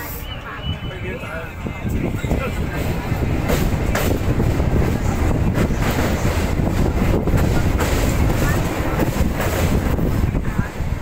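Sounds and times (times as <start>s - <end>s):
train rumbling past: 0.0s - 11.0s
wind buffeting microphone: 0.7s - 11.0s.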